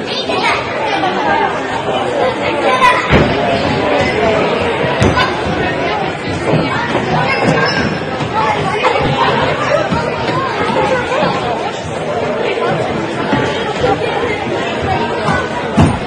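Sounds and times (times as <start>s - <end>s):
echoing crowd chatter: 0.0s - 16.0s.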